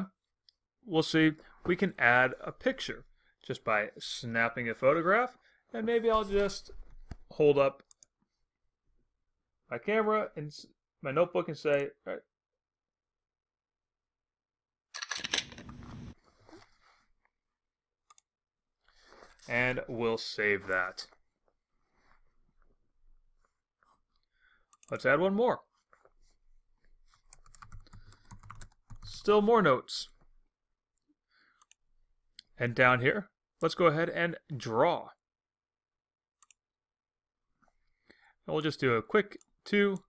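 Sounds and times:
computer mouse clicks: 36.4s - 36.6s.

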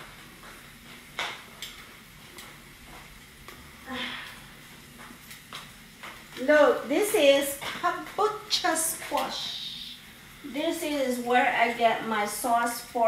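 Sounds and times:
food sizzling in a pan: 0.0s - 13.0s.

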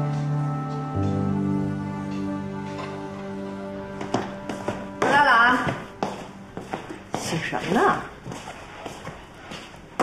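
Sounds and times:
footsteps on hard floor: 2.0s - 10.0s.

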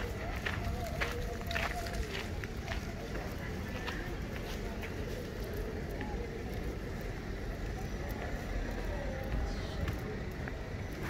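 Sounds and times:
indistinct voices of passers-by: 0.0s - 11.0s.

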